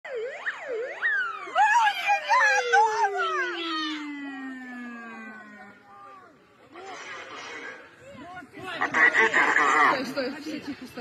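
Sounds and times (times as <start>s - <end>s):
siren yelping: 0.0s - 6.3s.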